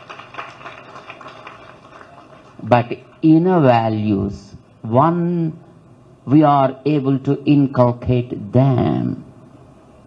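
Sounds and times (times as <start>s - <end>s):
crowded hall background noise: 0.0s - 10.0s.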